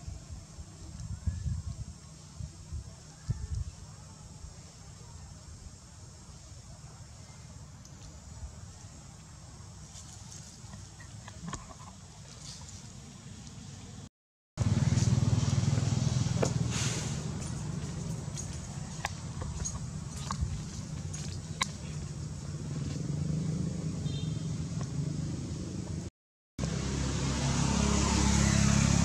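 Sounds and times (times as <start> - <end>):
vehicle engine rumbling: 6.9 - 29.0.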